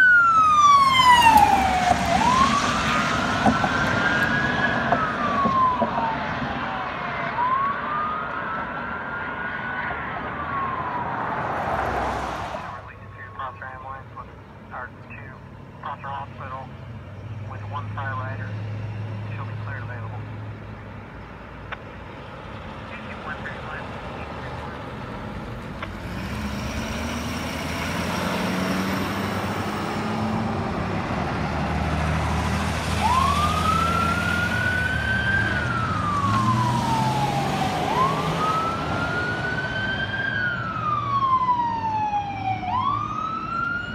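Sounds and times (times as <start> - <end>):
ambulance siren wailing: 0.0 - 16.7, 26.6 - 43.9
ambulance engine: 0.0 - 43.9.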